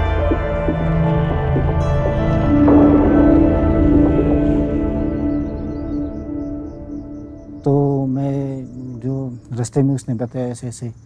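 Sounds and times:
soft ambient drone music: 0:00.0 - 0:09.8
man chanting: 0:07.6 - 0:11.0.

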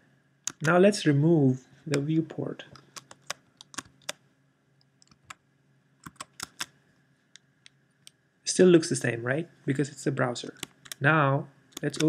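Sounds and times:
computer keyboard keystrokes: 0:00.5 - 0:00.8, 0:02.8 - 0:04.2, 0:06.0 - 0:06.7, 0:10.5 - 0:11.0, 0:11.8 - 0:12.0.

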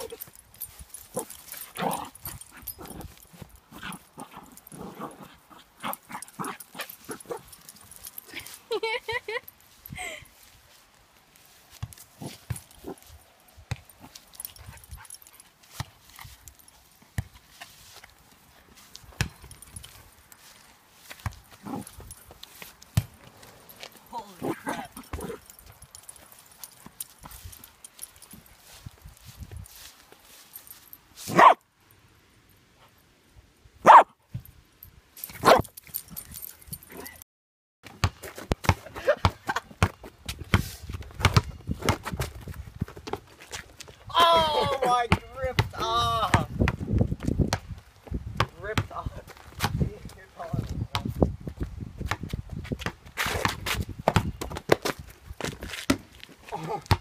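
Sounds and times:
dog yipping: 0:31.3 - 0:31.6, 0:33.8 - 0:34.1
small dog barking: 0:31.3 - 0:31.6, 0:33.8 - 0:34.1, 0:35.4 - 0:35.6.

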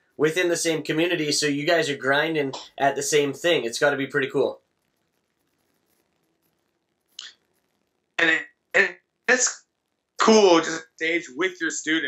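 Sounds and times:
faint line hiss: 0:00.0 - 0:12.0.

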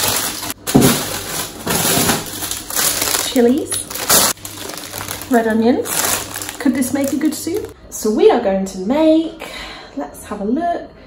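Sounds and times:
plastic bags rustling: 0:00.0 - 0:07.8.

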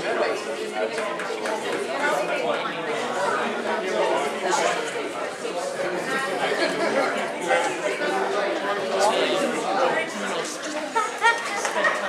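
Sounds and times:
crowd chattering in a hall: 0:00.0 - 0:12.0.

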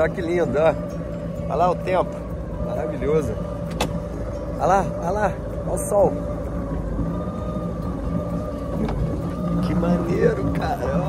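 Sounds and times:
jet ski engine running: 0:00.0 - 0:11.0.

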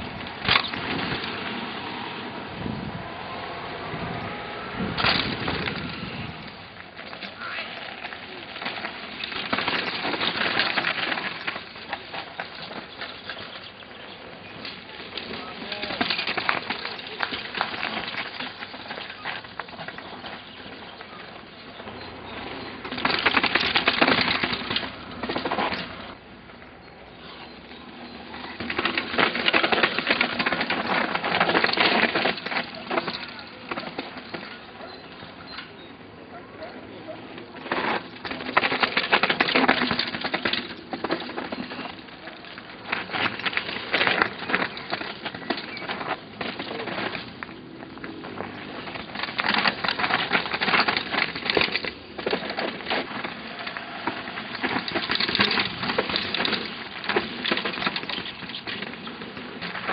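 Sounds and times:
bike rattling and clicking: 0:00.0 - 0:02.3, 0:04.0 - 0:59.9
bike tyres crunching on gravel: 0:00.0 - 0:35.9, 0:36.6 - 0:59.9.

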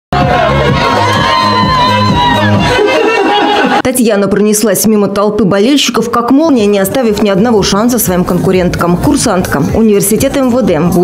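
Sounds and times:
crowd cheering and shouting: 0:00.1 - 0:03.8, 0:10.3 - 0:11.0
music playing: 0:00.1 - 0:04.0, 0:06.4 - 0:11.0.

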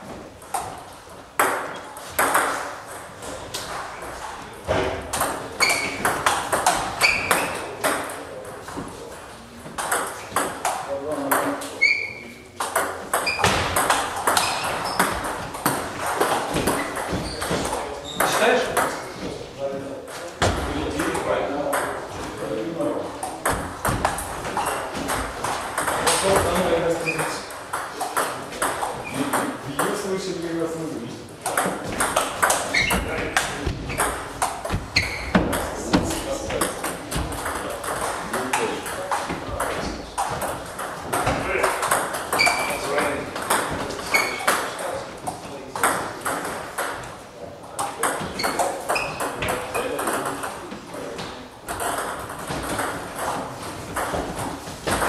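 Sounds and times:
knocks from neighbouring tables: 0:00.0 - 0:09.0, 0:09.6 - 0:11.6, 0:12.6 - 0:19.0, 0:23.2 - 0:30.1, 0:31.4 - 0:47.2, 0:47.8 - 0:55.0
voices talking in a hall: 0:00.0 - 0:55.0.

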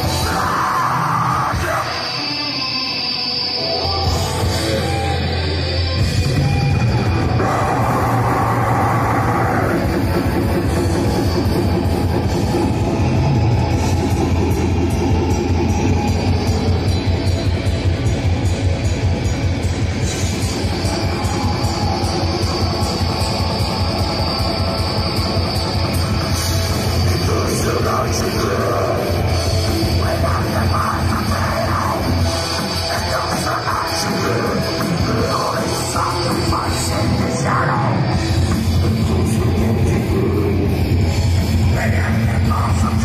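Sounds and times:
distorted electric guitars: 0:00.0 - 0:43.0
fast drumming: 0:06.0 - 0:37.2.

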